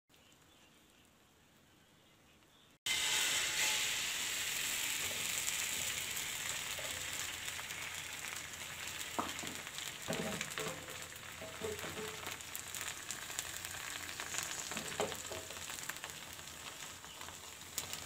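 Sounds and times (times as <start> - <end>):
egg sizzling in hot oil: 2.9 - 18.0.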